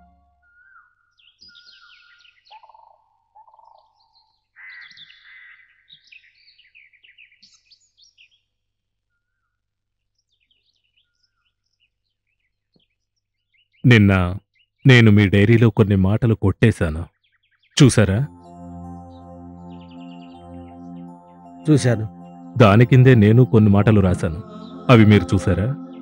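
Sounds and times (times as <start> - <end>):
birds chirping and singing: 17.2 - 26.0.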